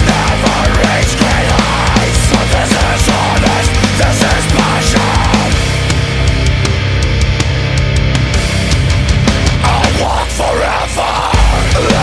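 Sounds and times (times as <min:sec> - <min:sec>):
metalcore song: 0:00.0 - 0:12.0.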